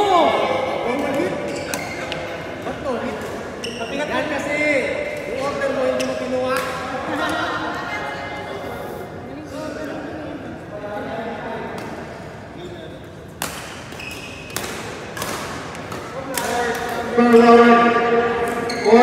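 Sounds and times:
racket smacking shuttlecock: 13.4 - 17.0.

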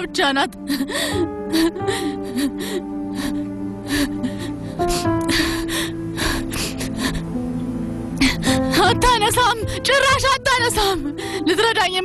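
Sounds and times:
sustained background music: 0.0 - 12.0
woman crying: 0.5 - 7.3, 8.2 - 12.0.

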